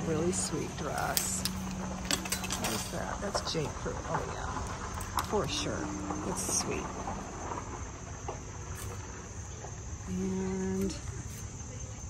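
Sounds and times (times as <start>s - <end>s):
low rumble: 0.0s - 11.7s
insects droning: 0.0s - 12.0s.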